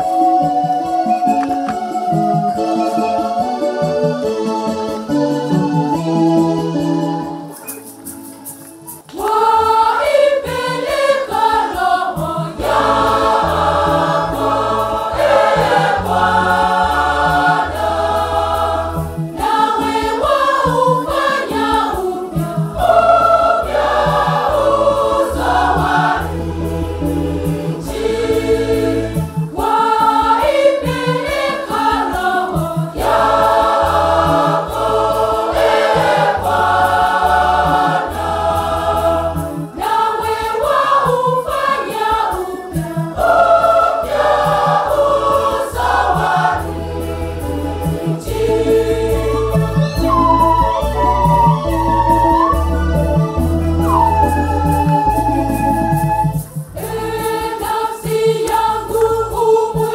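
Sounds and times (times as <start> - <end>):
church choir singing a hymn: 9.1 - 59.9.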